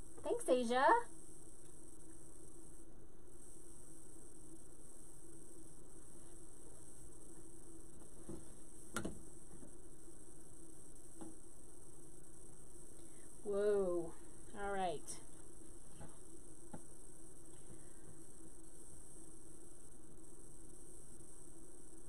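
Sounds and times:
low electrical hum: 0:00.0 - 0:22.0.

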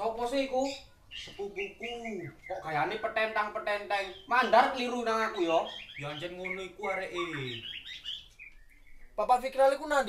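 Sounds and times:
high-pitched bird chirps: 0:00.4 - 0:09.2.

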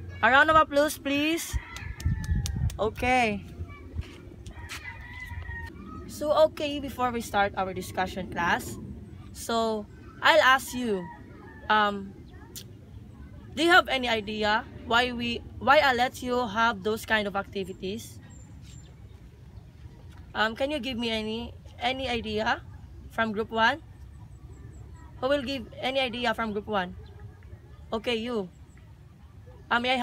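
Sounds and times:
low steady rumble: 0:00.0 - 0:30.0
rooster crowing faintly: 0:04.4 - 0:06.2.

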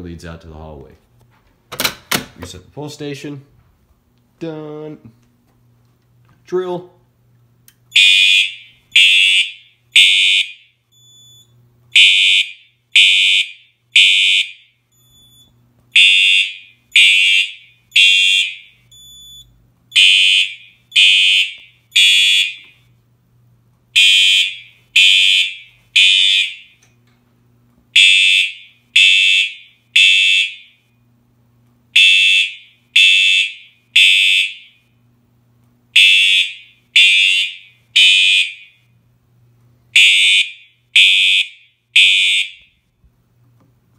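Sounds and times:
fire alarm horn blasts: 0:07.9 - 0:22.9, 0:24.0 - 0:26.8, 0:28.0 - 0:30.9, 0:31.9 - 0:35.0, 0:35.9 - 0:38.9, 0:39.9 - 0:42.8.

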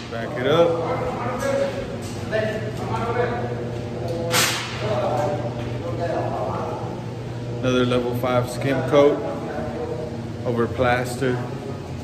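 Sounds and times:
faint voices: 0:00.0 - 0:12.0
steady low hum: 0:00.0 - 0:12.0.

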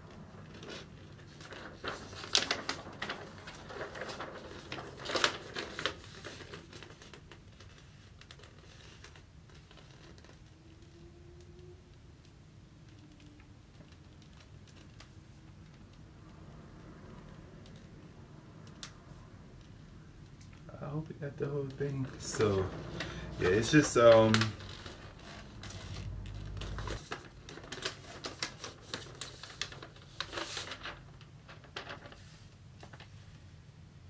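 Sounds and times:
paper poster crinkling: 0:00.0 - 0:18.1, 0:18.7 - 0:33.4.

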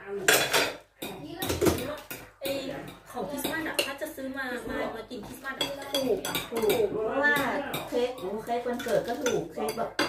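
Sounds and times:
plates and cutlery clinking: 0:00.2 - 0:04.2, 0:04.8 - 0:10.0.

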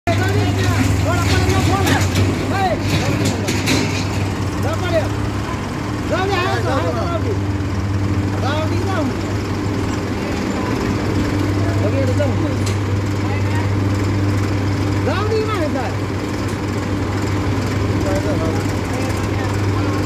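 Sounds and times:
tractor diesel engine idling: 0:00.0 - 0:20.0.

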